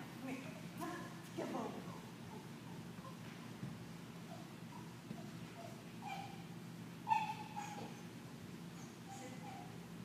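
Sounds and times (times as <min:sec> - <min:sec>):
dog whimpering: 0:04.3 - 0:06.5, 0:07.1 - 0:08.1, 0:08.8 - 0:09.8.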